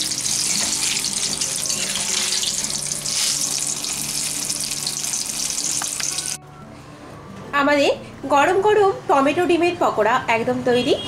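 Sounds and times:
food deep-frying in oil: 0:00.0 - 0:06.4.

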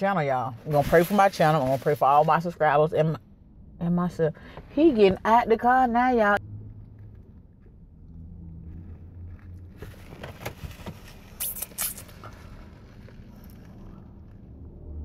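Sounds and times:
low car cabin hum: 0:00.0 - 0:15.0.

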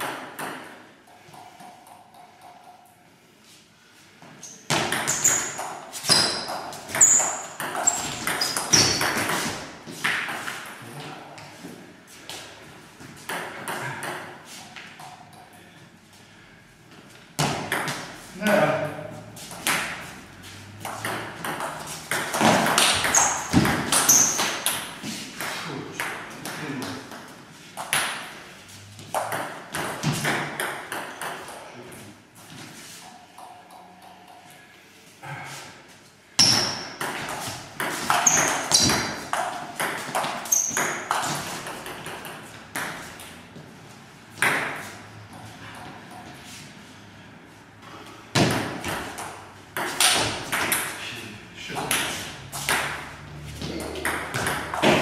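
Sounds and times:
shoes squeaking on hall floor: 0:01.2 - 0:16.2, 0:16.9 - 0:25.5, 0:35.2 - 0:44.2.

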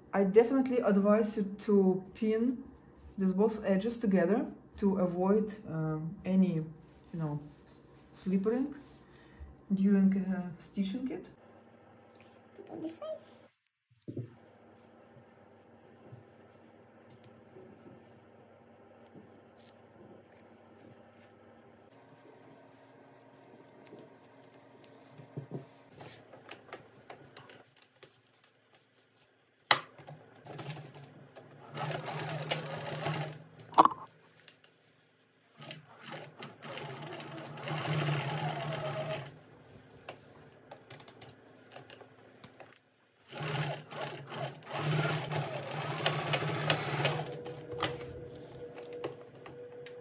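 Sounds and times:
sewing machine stitching: 0:30.0 - 0:33.5, 0:35.5 - 0:39.4, 0:43.2 - 0:49.9.

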